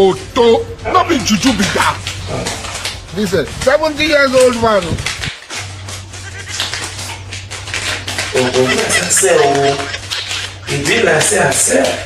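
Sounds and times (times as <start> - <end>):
low electrical hum: 0.0 - 12.0
paper banknotes rustling: 1.0 - 12.0.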